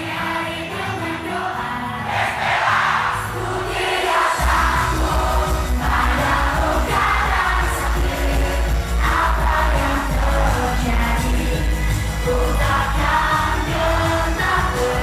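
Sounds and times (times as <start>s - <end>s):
women singing into microphones: 0.0s - 15.0s
pop backing track with bass and drums: 4.4s - 15.0s.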